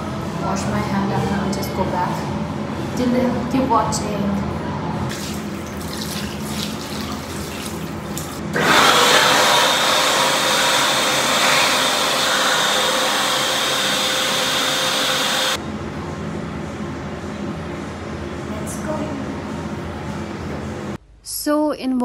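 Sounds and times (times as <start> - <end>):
tap running with splashing: 5.1 - 8.4
rush with motor whine: 8.6 - 15.6.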